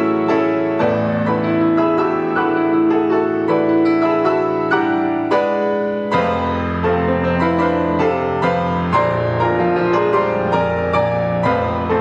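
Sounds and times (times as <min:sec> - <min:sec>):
solo grand piano: 0:00.0 - 0:12.0.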